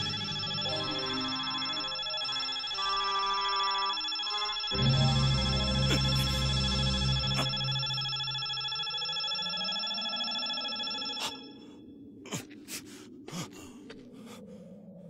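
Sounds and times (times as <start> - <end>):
shimmering energy hum: 0.0 - 11.9.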